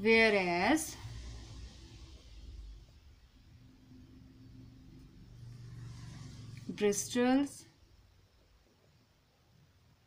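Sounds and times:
faint low rumble: 0.0s - 10.0s.

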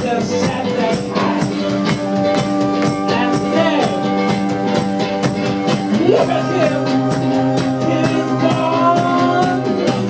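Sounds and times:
drum kit steady beat: 0.0s - 10.0s
garage rock band playing: 0.0s - 10.0s
held guitar chords: 0.0s - 10.0s.

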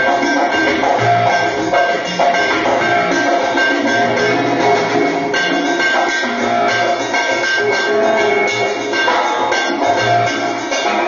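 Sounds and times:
drums playing: 0.0s - 11.0s
live band music: 0.0s - 11.0s.

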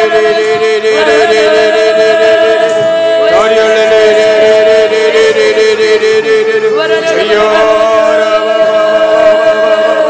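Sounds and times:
voice holding long note: 0.0s - 10.0s
voices chanting and singing: 0.0s - 10.0s.

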